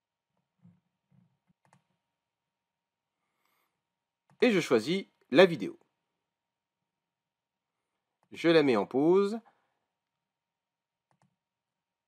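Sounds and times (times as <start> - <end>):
computer mouse clicks: 0.6 - 2.0, 11.0 - 11.4.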